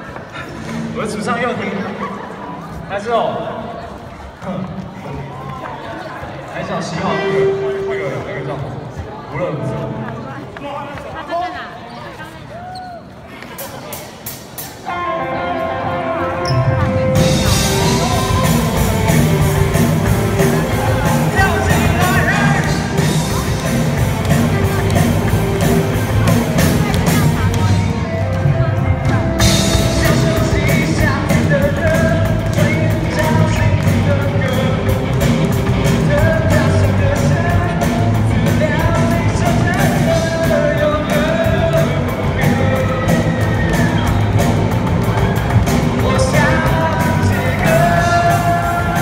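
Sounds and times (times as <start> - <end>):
rock band playing: 13.9 - 49.0
electric guitars: 14.6 - 49.0
electric guitar notes ringing: 14.8 - 31.3
bass guitar: 14.9 - 49.0
person singing: 14.9 - 49.0
drum kit beat: 16.9 - 49.0.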